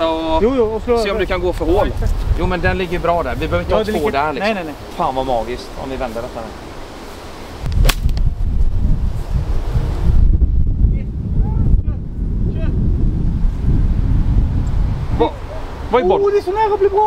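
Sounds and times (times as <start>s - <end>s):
wind buffeting microphone: 0.0s - 4.5s, 7.5s - 17.0s
golf club striking ball: 7.7s - 8.2s.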